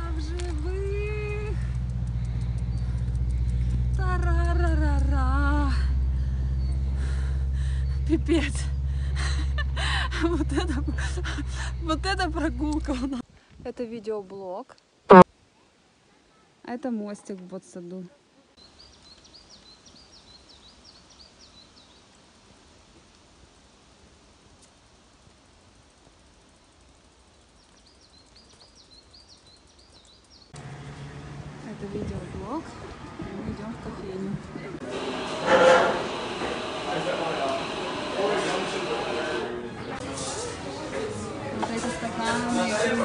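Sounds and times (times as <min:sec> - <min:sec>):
songbird singing: 0:00.0 - 0:08.9, 0:18.6 - 0:22.2, 0:26.0 - 0:31.1
steady low rumble: 0:00.0 - 0:13.2
faint low background noise: 0:12.4 - 0:29.9.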